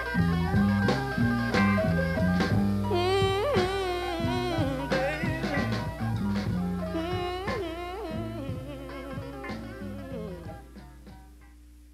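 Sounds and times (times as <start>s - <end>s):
electric blues band playing: 0.0s - 11.5s.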